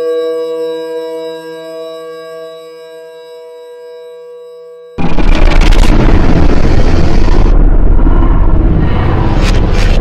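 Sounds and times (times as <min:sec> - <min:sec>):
eerie droning tones: 0:05.0 - 0:10.0
loud harsh distorted noise blast: 0:05.0 - 0:10.0.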